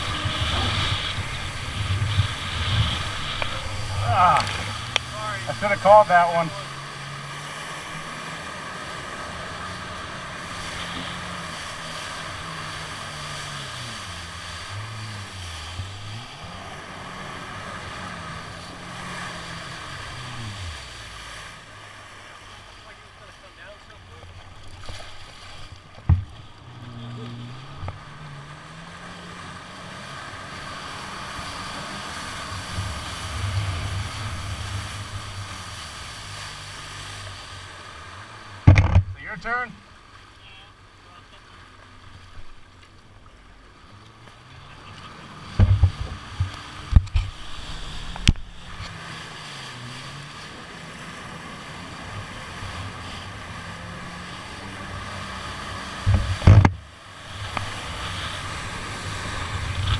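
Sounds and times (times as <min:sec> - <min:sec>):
wind on microphone: 0:00.0 - 0:05.1
jet ski engine: 0:00.0 - 0:59.9.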